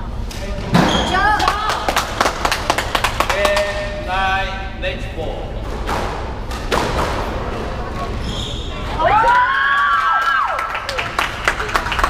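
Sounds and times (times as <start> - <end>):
squash ball bouncing: 5.8 - 8.0.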